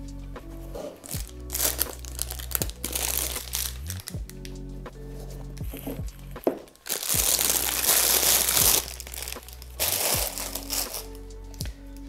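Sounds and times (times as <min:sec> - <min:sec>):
background music: 0:00.0 - 0:12.0
plastic wrapping crinkling: 0:00.8 - 0:04.6, 0:05.7 - 0:11.6.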